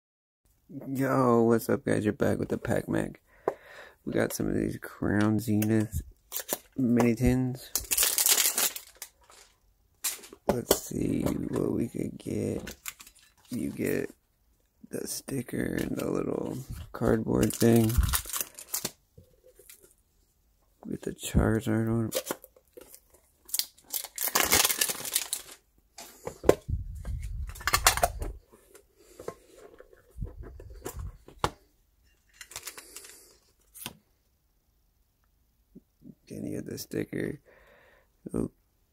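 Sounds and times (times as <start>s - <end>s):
plastic packaging crinkling: 6.2s - 14.1s, 15.7s - 19.9s, 22.1s - 25.7s, 27.0s - 28.4s, 32.3s - 33.9s
packaging ripping: 7.7s - 10.9s, 17.3s - 19.0s, 22.1s - 25.6s, 32.4s - 33.2s.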